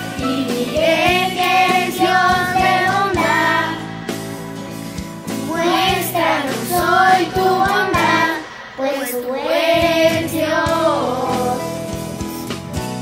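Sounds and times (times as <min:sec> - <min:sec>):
children singing: 0:00.0 - 0:03.9, 0:05.4 - 0:11.8
instrumental backing track: 0:00.0 - 0:13.0.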